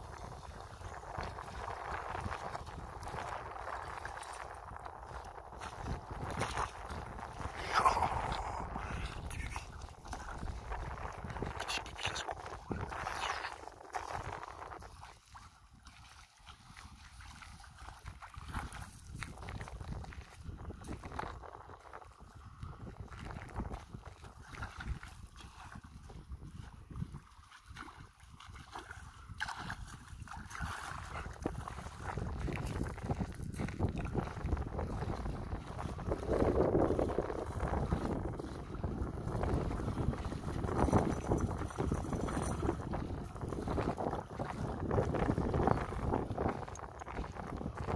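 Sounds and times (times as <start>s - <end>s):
dog wading in water: 0.0s - 47.9s
water lapping: 0.0s - 47.9s
wind buffeting microphone: 0.0s - 47.9s.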